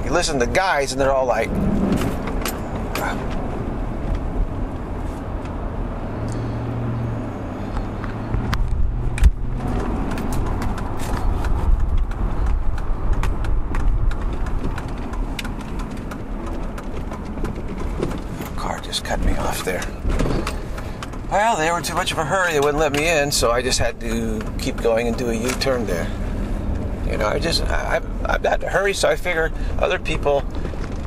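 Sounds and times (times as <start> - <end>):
road and engine noise in car: 0.0 - 31.0.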